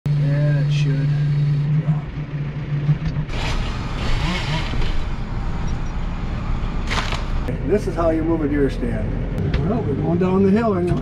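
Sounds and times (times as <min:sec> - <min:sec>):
tractor engine drone: 0:00.1 - 0:11.0.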